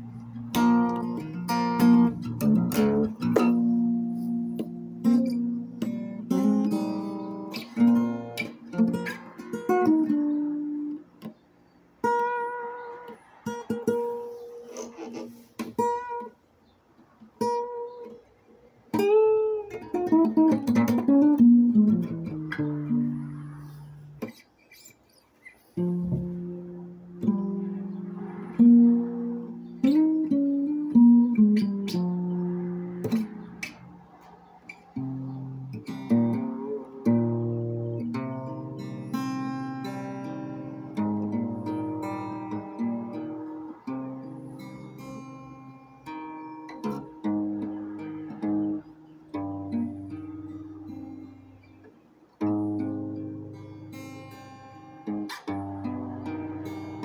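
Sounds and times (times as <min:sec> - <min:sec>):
fingerstyle acoustic guitar: 0:00.0 - 0:57.0.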